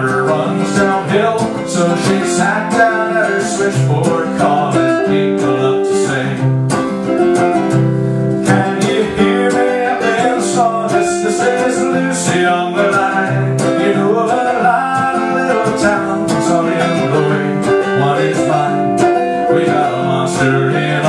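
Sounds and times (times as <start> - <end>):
archtop guitar strumming chords: 0.0 - 21.0.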